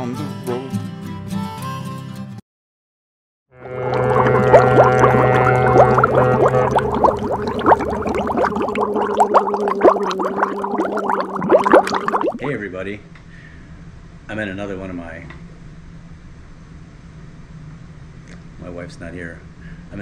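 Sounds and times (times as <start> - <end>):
droning chord: 3.6 - 10.6.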